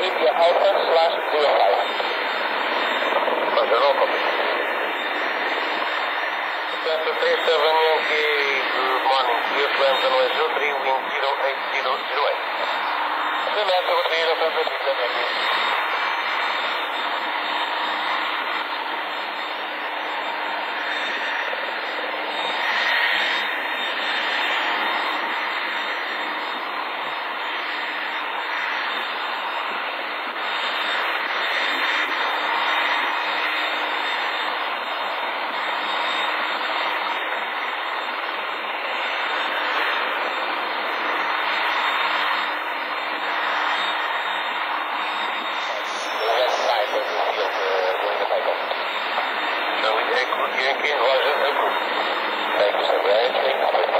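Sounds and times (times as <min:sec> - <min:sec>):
aircraft engine rushing: 0:00.0 - 0:53.9.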